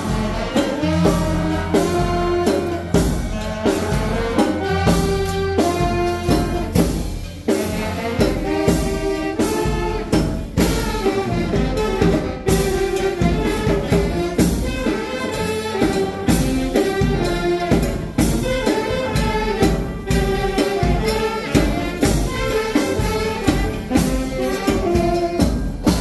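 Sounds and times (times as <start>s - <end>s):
march drum beat: 0.0s - 26.0s
saxophones and horns melody: 0.0s - 26.0s.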